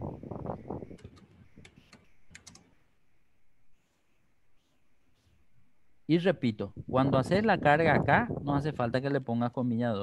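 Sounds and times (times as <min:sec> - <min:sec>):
computer keyboard keystrokes: 0:01.0 - 0:02.7.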